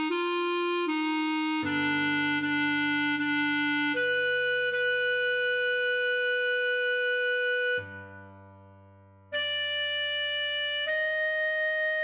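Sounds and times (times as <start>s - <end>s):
clarinet holding long note: 0.0s - 8.4s, 9.3s - 12.0s
soft low backing accompaniment: 0.0s - 12.0s.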